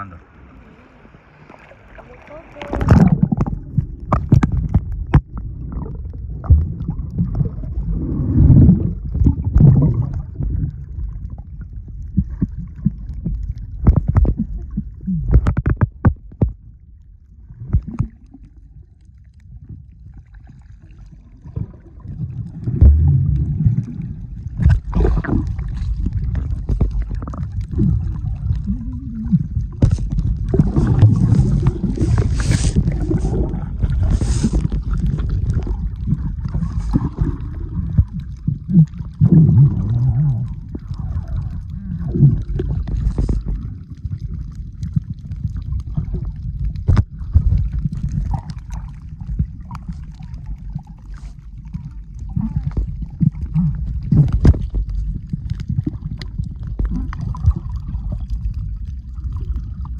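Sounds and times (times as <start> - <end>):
bubbling and gurgling: 0.0 - 59.9
underwater water rumble: 0.0 - 59.9
bursts of bubbles: 1.5 - 15.7, 20.8 - 59.9.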